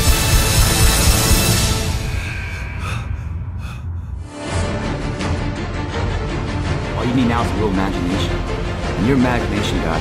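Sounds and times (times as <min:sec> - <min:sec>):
low bass background music: 0:00.0 - 0:02.2, 0:04.2 - 0:10.0
sharp breaths or gasps: 0:02.6 - 0:04.4.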